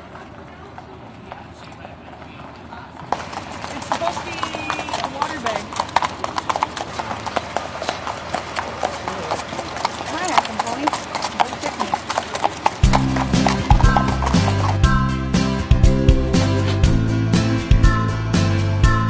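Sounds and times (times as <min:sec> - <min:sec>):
horse hooves clip-clopping on dirt: 0:00.0 - 0:15.2
music: 0:12.8 - 0:19.0.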